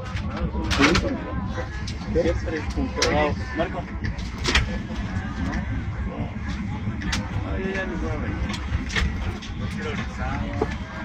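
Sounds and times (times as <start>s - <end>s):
airliner cabin rumble: 0.0s - 11.0s.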